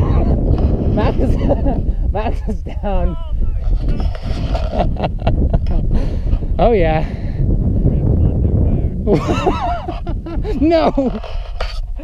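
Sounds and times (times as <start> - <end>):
wind rumble on microphone: 0.0 - 12.0
person laughing: 4.3 - 6.2, 9.0 - 11.2.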